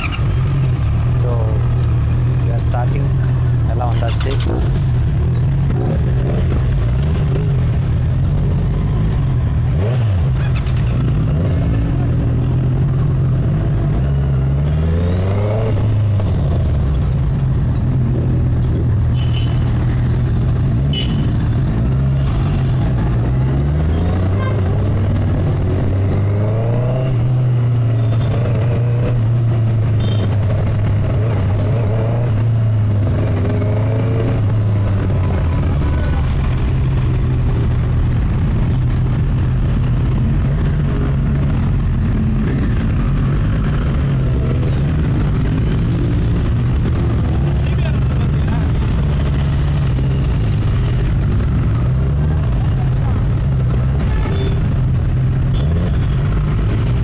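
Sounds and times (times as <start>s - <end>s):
road and wind noise: 0.0s - 57.0s
motorcycle engine accelerating: 21.4s - 57.0s.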